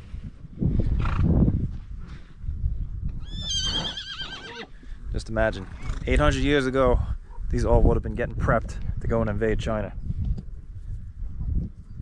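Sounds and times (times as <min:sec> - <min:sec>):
horse neighing: 0:03.2 - 0:04.8.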